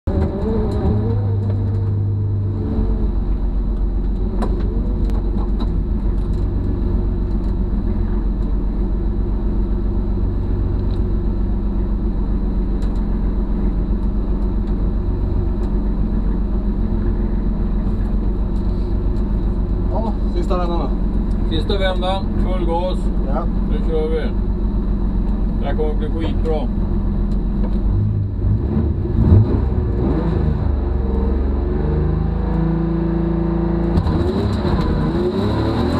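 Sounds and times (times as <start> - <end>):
car engine idling: 0.6 - 28.4.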